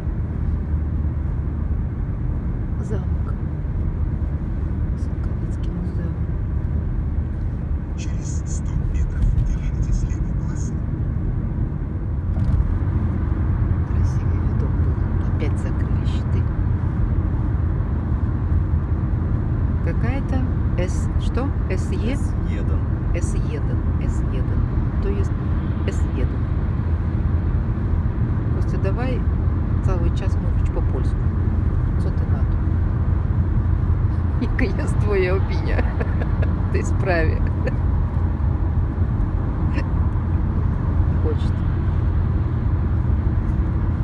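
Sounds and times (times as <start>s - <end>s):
road and engine noise in car: 0.0s - 44.0s.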